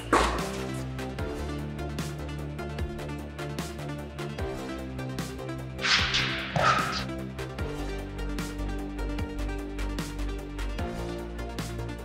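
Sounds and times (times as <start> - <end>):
electronic music with beat: 5.8 - 7.2.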